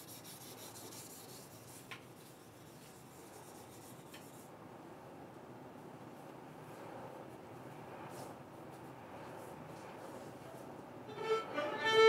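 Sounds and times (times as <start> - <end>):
rustling and rubbing: 0.0 - 4.5.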